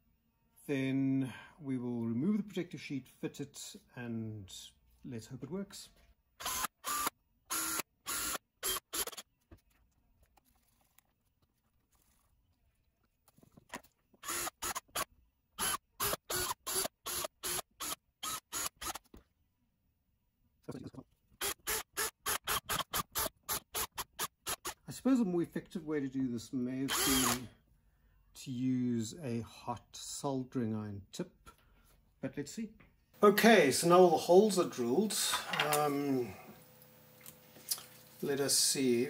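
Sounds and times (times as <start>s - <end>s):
cordless drill bursts: 6.4s - 9.2s, 14.2s - 19.0s, 21.4s - 24.8s, 26.9s - 27.5s.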